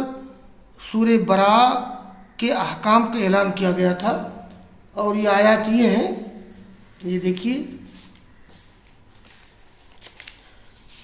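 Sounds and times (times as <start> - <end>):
book pages turning: 6.2 - 11.0.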